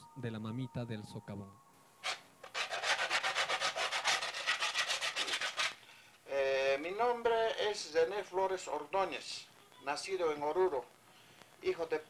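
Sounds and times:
sandpaper rubbing back and forth: 2.0s - 5.8s.

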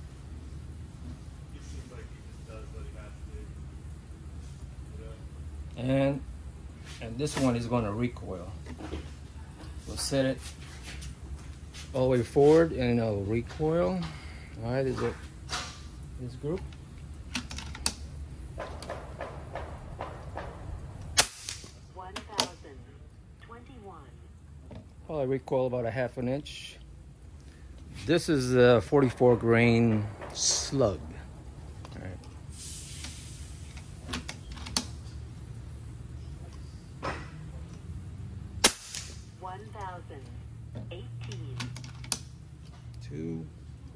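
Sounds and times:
air rifle shot: 21.1s - 21.8s, 38.6s - 39.3s.

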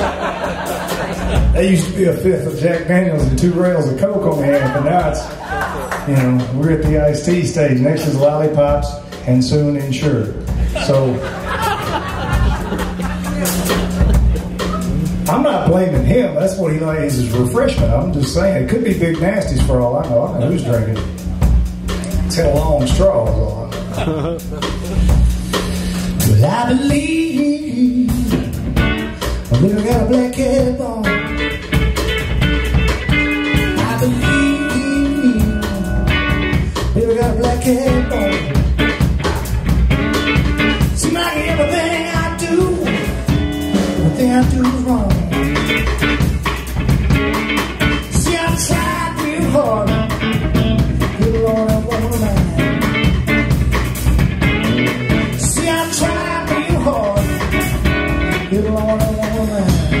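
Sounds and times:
live electric blues band: 0.0s - 60.0s
man singing: 26.2s - 28.6s, 29.5s - 31.4s, 33.7s - 36.2s, 36.9s - 38.6s, 41.0s - 45.6s, 48.0s - 52.9s, 55.3s - 57.6s, 58.3s - 60.0s.

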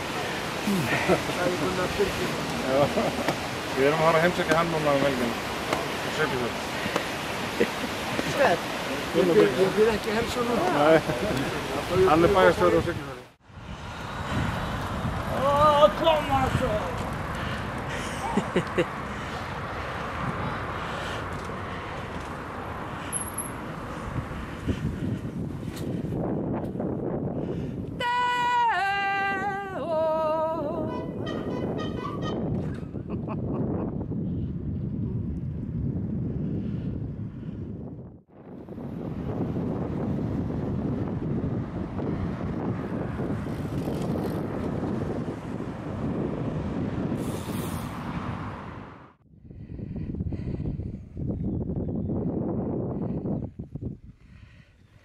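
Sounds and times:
wind rush: 0.0s - 28.6s, 30.3s - 55.0s
bicycle tyres rolling on pavement: 13.7s - 18.1s, 38.5s - 48.2s.

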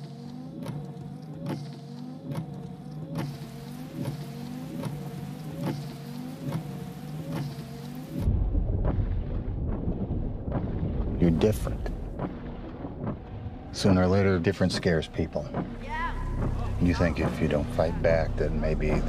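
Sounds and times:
rhythmic ticking pulse: 0.0s - 19.0s
low drone: 3.3s - 19.0s
deep rumble: 8.0s - 19.0s.

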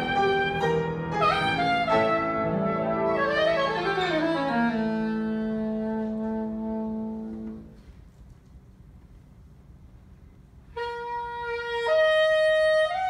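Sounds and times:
single-reed woodwind: 0.0s - 8.2s, 10.6s - 13.0s
piano: 0.0s - 8.3s.

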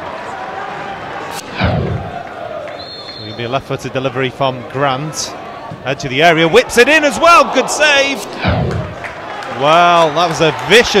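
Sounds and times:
football crowd noise: 0.0s - 11.0s
falling whoosh: 1.3s - 2.3s, 8.0s - 9.1s
deep boom: 1.4s - 2.3s, 8.2s - 9.1s.

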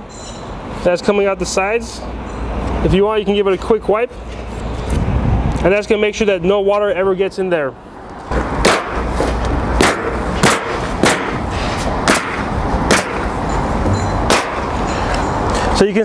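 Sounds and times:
steady background noise: 0.0s - 16.0s
nail gun firing: 8.6s - 9.0s, 9.8s - 11.4s, 12.1s - 13.3s, 14.3s - 14.7s.

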